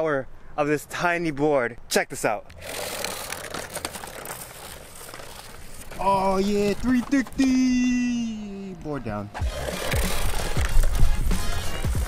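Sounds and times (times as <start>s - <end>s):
small wheels rolling on asphalt: 2.5s - 12.0s.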